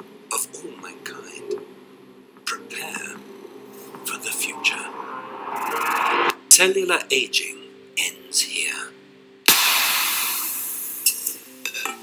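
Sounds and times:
whoosh and hit sound effect: 0:03.7 - 0:06.4.

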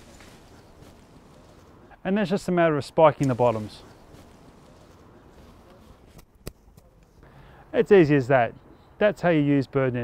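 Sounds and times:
faint netting handling: 0:00.0 - 0:01.9, 0:03.1 - 0:07.2.

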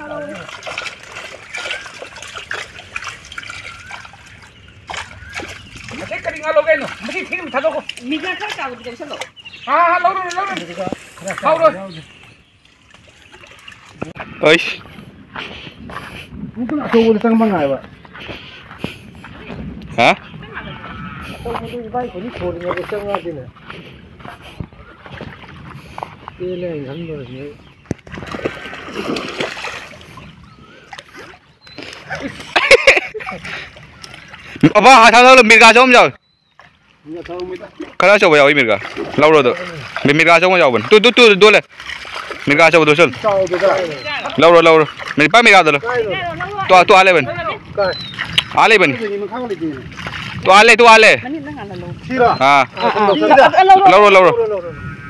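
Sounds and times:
water splashing and trickling: 0:00.0 - 0:55.0.

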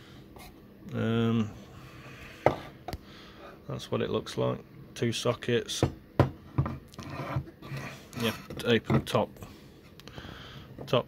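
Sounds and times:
light scraping and rubbing: 0:07.0 - 0:08.8.

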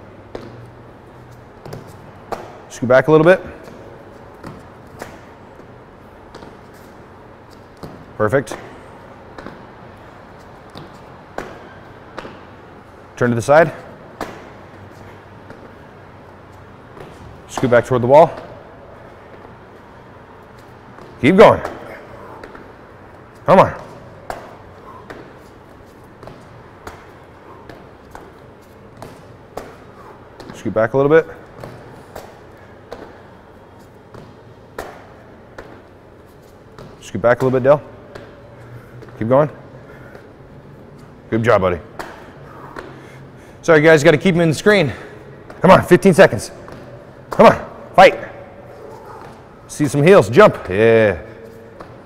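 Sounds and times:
steady background hiss: 0:00.0 - 0:52.0
shoes and hands thumping floor: 0:31.4 - 0:39.2.

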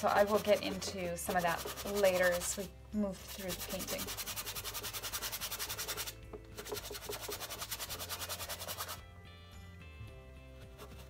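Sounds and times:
brush dabbing paint on canvas: 0:00.0 - 0:09.0, 0:10.6 - 0:11.0.

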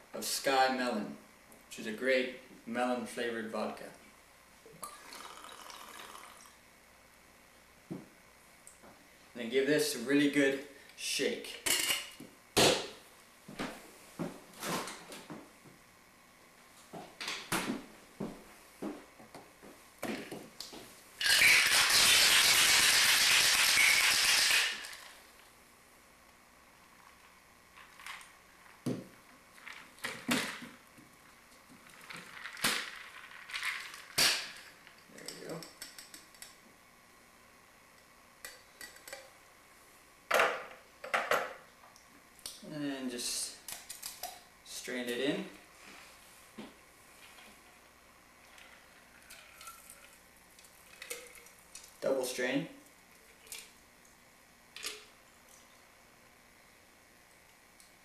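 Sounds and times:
ice rattling in cocktail shaker: 0:31.8 - 0:34.4.

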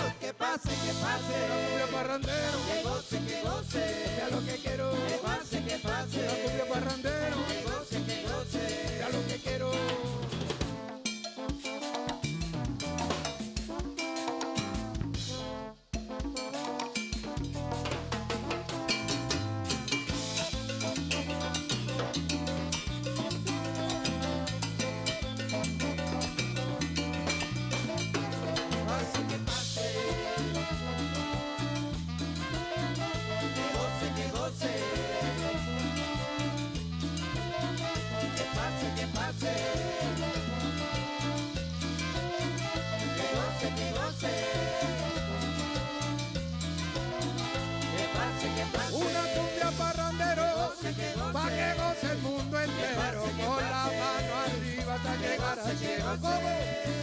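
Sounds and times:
cumbia band playing: 0:00.0 - 0:57.0.

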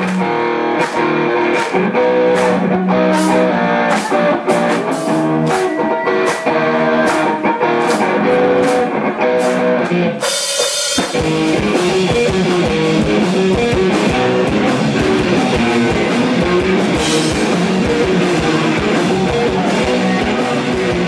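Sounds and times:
bass guitar: 0:00.0 - 0:21.0
electric guitar riff: 0:00.0 - 0:21.0
drums and cymbals: 0:00.8 - 0:21.0.

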